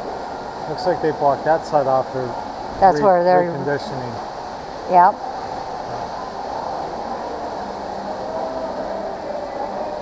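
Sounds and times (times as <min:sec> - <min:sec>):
even hiss: 0:00.0 - 0:10.0
faint steady hum: 0:00.0 - 0:10.0.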